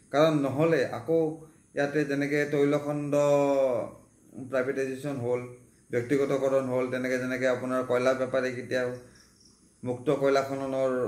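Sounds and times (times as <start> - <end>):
man speaking: 0.0 - 9.1, 9.8 - 11.0.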